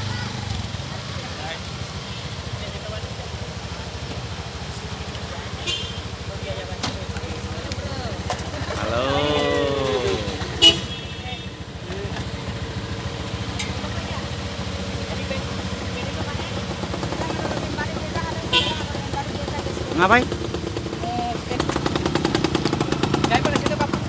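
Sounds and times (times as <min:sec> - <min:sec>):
vehicle engine idling: 0:00.0 - 0:24.0
person calling out: 0:08.8 - 0:10.6.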